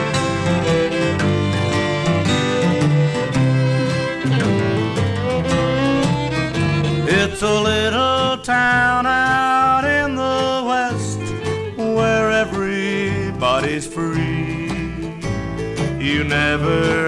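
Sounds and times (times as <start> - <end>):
fiddle playing lead: 0.0 - 17.0
guitar and bass: 0.0 - 17.0.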